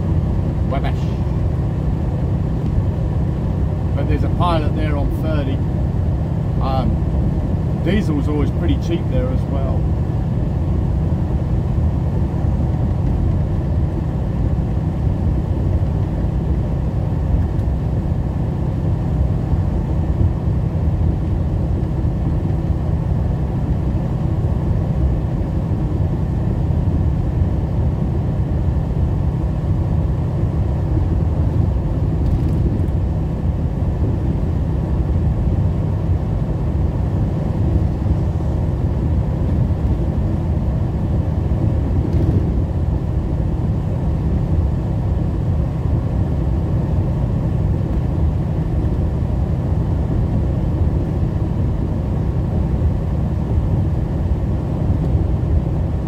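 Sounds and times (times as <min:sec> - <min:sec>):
diesel engine drone: 0:00.0 - 0:56.0.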